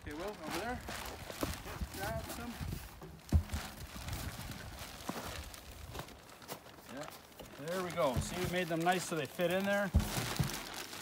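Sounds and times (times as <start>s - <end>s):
plastic bag rustling: 0.0s - 11.0s
footsteps: 0.2s - 11.0s
sharp thump: 9.9s - 10.8s.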